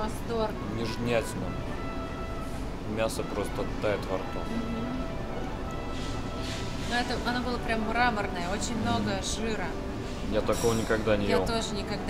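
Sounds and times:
restaurant room hum: 0:00.0 - 0:12.0
soft background music: 0:00.0 - 0:12.0.

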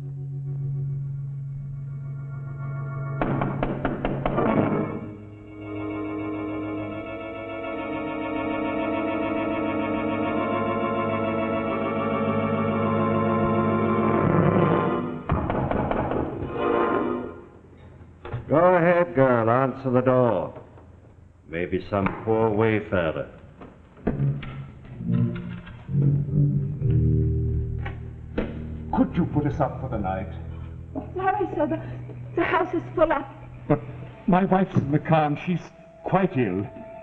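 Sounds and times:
suspenseful organ music: 0:00.0 - 0:17.6, 0:24.2 - 0:37.0.

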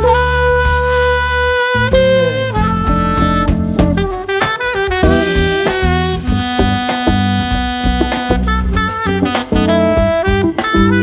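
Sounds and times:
jazz drums: 0:00.0 - 0:11.0
saxophone melody: 0:00.0 - 0:11.0
walking bass: 0:00.0 - 0:11.0.

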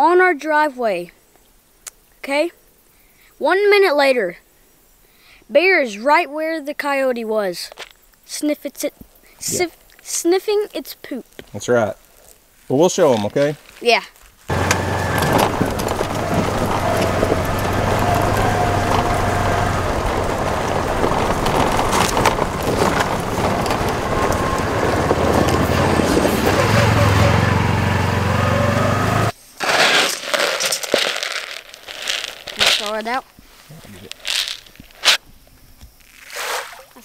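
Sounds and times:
quiet outdoor sounds: 0:00.0 - 0:37.0
tyres crackling over gravel: 0:11.3 - 0:35.2
low engine drone: 0:14.5 - 0:29.3.

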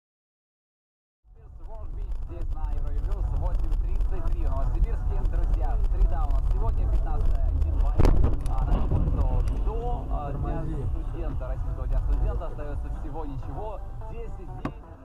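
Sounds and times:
moving car rumble: 0:01.3 - 0:15.0
voices talking: 0:01.4 - 0:15.0.

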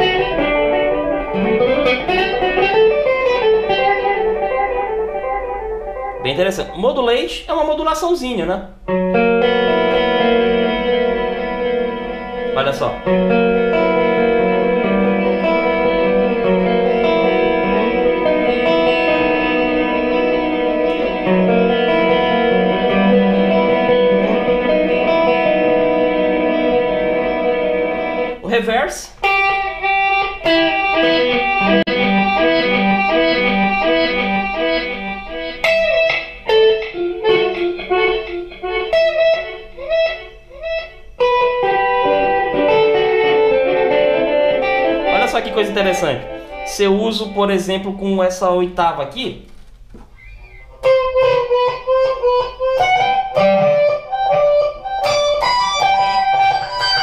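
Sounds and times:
electric guitar with delay: 0:00.0 - 0:07.1, 0:08.8 - 0:48.4, 0:50.2 - 0:57.0.

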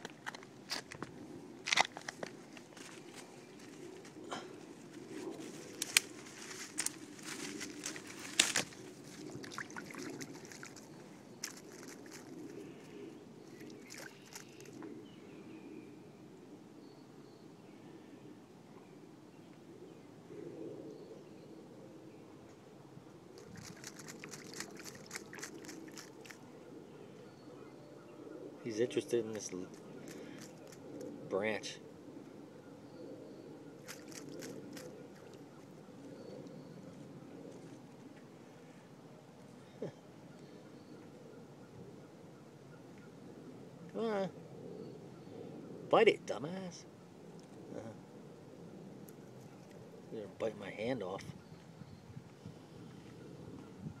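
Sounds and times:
sharp crunches and clicks: 0:00.0 - 0:03.3, 0:05.7 - 0:08.8, 0:11.4 - 0:12.5, 0:23.4 - 0:26.4, 0:33.8 - 0:34.9.

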